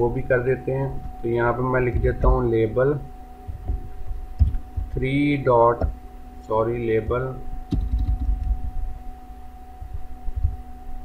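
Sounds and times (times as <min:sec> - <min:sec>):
faint electrical hum: 0:00.0 - 0:11.0
computer keyboard typing: 0:07.7 - 0:08.6.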